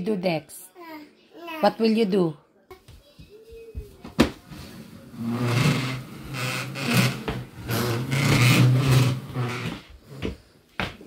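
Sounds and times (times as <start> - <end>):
plastic stool scraping wooden floor: 4.2 - 10.4.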